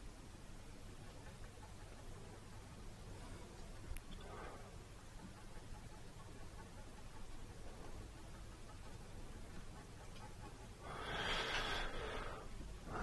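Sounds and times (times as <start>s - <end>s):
person taking soft breath: 10.8s - 13.0s.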